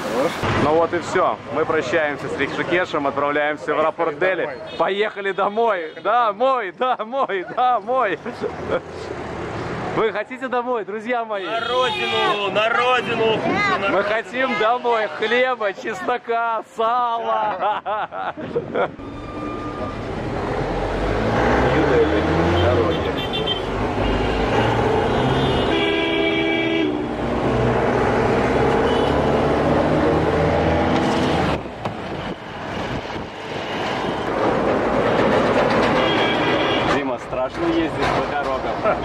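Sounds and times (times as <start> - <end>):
car engine and road noise: 0.0 - 4.3, 8.1 - 10.3, 11.5 - 16.3, 18.5 - 39.0
vehicle horns honking: 11.4 - 13.2, 22.2 - 27.2, 28.6 - 29.5, 35.8 - 37.0.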